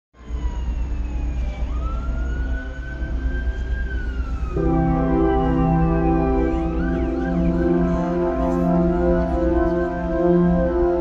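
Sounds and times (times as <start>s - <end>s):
siren wailing: 0.2s - 11.0s
steady low rumble: 0.9s - 11.0s.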